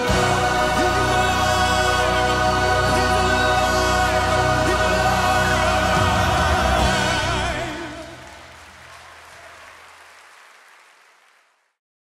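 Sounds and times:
congregation applauding: 4.4 - 11.8.

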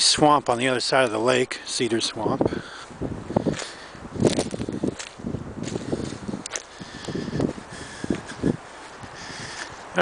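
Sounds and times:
footsteps crunching on dry leaves: 2.8 - 10.0
twigs snapping: 3.5 - 5.8, 6.4 - 7.2.

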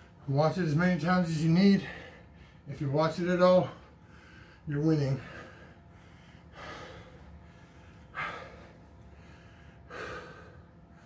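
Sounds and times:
man breathing heavily: 1.4 - 11.0.

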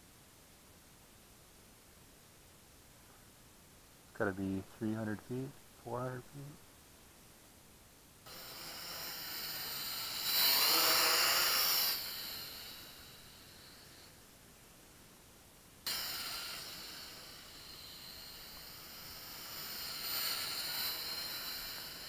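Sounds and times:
drone propellers whining: 8.3 - 13.9, 15.9 - 22.0.

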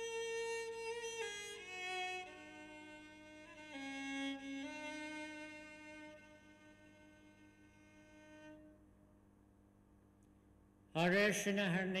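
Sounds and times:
low room hum: 5.4 - 11.0.

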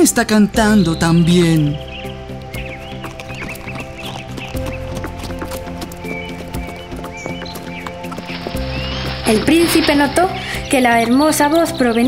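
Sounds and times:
background music: 0.0 - 12.0
horse hooves clip-clop: 1.0 - 12.0.

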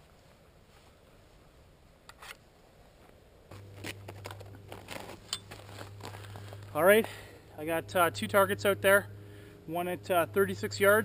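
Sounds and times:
rustling: 0.0 - 7.3
low steady hum: 0.0 - 11.0.

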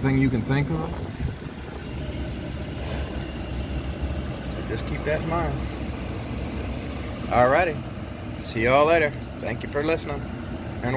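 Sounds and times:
pickup truck engine idling: 0.0 - 10.9.

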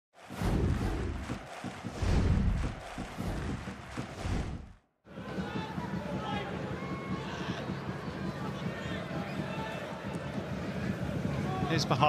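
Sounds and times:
produced music with whooshes: 0.2 - 4.9
stadium crowd ambience: 5.0 - 12.0.

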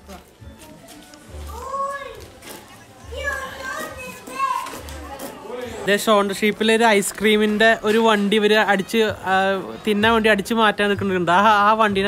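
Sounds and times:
children calling out: 1.4 - 5.1.

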